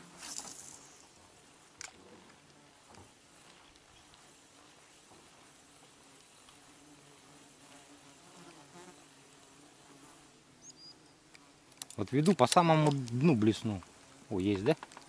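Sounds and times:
flying insect buzzing: 0.0 - 11.8.

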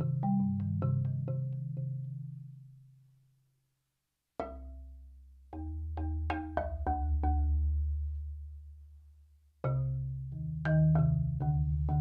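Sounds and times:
marimba played with soft mallets: 0.0 - 2.4, 4.4 - 8.3, 9.6 - 12.0.

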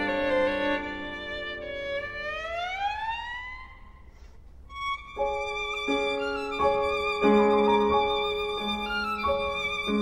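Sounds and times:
violin glissando: 0.0 - 3.6, 4.7 - 10.0.

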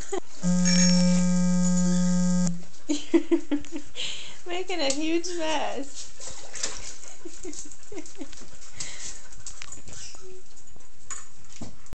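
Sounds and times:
dogs lapping water: 5.8 - 10.6.

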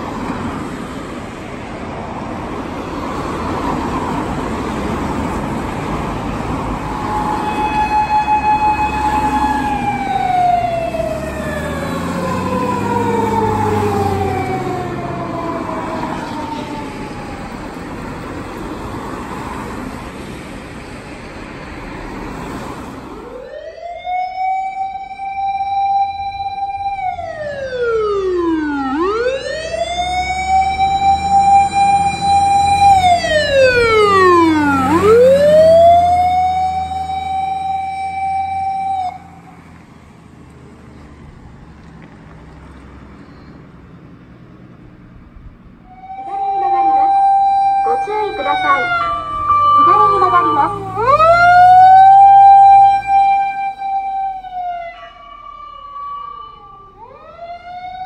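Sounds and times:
fire engine sirens wailing: 0.0 - 40.1, 45.8 - 58.0
traffic noise: 0.0 - 58.0
vehicle engine rumble: 26.2 - 55.7.

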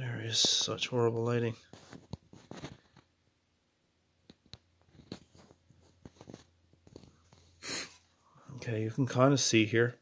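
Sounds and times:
short sharp breath: 7.6 - 8.6.

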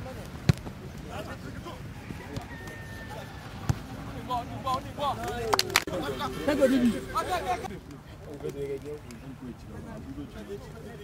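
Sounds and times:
distant shouts of players: 1.7 - 4.8.

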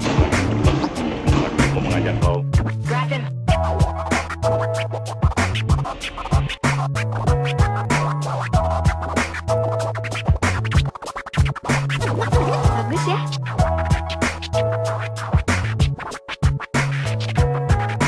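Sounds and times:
hip hop music: 0.0 - 18.0
turntable scratches: 0.0 - 18.0.

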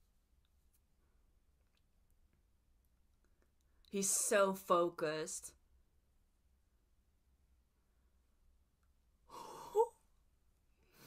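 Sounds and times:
woman speaking: 3.9 - 5.6.

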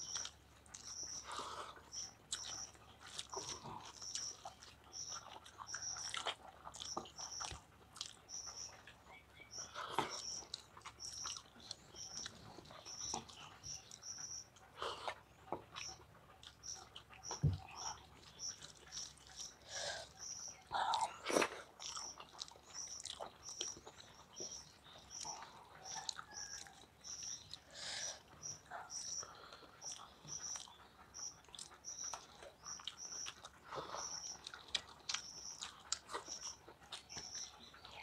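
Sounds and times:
chewing and lip smacks: 0.0 - 38.0.

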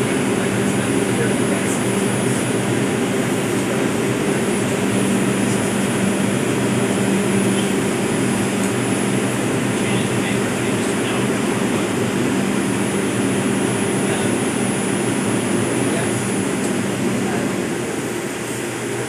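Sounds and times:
subway car ventilation humming: 0.0 - 19.0.

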